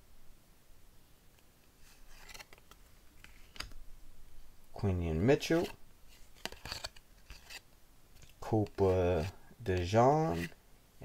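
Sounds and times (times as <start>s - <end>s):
trading cards shuffled by hand: 1.8s - 3.8s, 5.4s - 7.6s, 8.2s - 10.6s.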